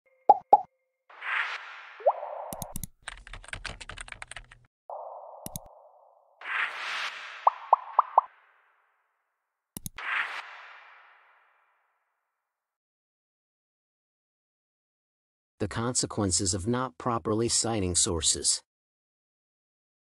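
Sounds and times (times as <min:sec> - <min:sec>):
interface pops: 0:02.0 - 0:02.9, 0:04.9 - 0:08.4
mouse click: 0:02.5 - 0:02.9, 0:05.4 - 0:05.8, 0:09.8 - 0:10.0
keyboard typing clicks: 0:02.5 - 0:04.6, 0:05.4 - 0:05.7, 0:09.8 - 0:10.0.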